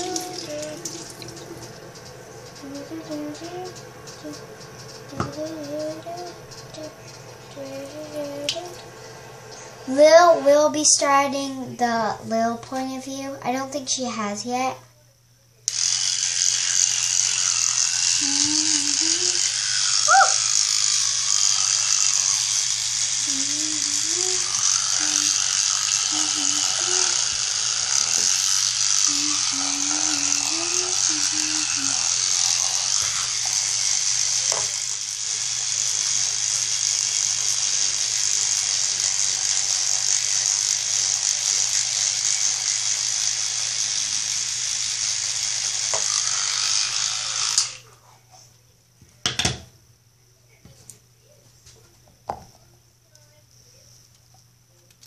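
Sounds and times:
electric toothbrush buzzing: 0.0 - 12.5, 15.7 - 47.9.

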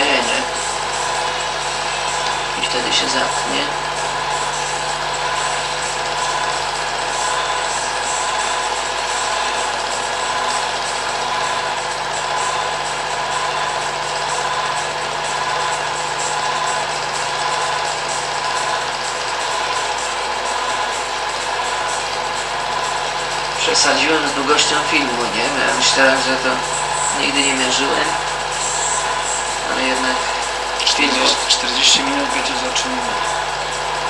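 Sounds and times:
film projector whirring: 0.0 - 34.0.

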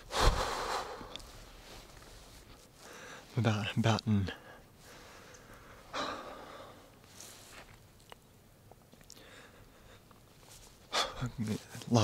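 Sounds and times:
man exhaling heavily: 0.0 - 1.2.

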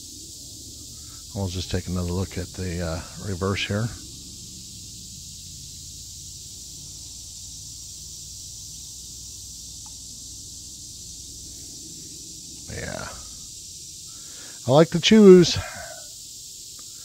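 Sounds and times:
low steady rumble: 0.0 - 14.4
high hiss: 0.0 - 17.0.

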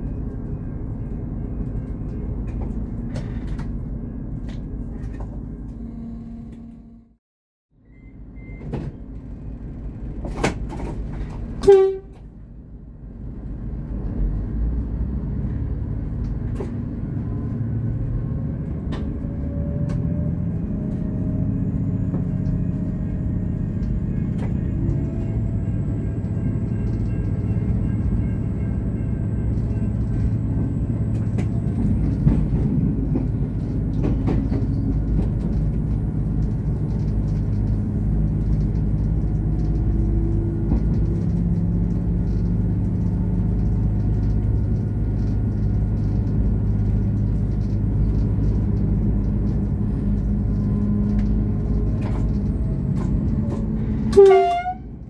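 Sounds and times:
diesel railcar engine rumble: 0.0 - 7.2, 7.8 - 55.0
rising whine: 5.6 - 7.2.

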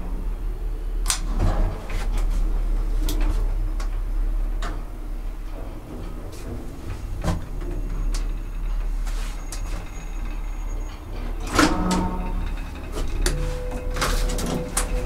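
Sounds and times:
elevator clunks and rattles: 0.0 - 15.0
elevator machinery humming: 0.0 - 15.0
steady elevator tone: 0.0 - 15.0.

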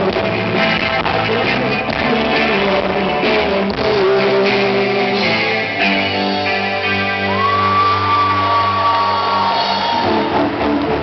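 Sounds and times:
live rock band: 0.0 - 11.0
crowd whooping: 7.0 - 11.0.

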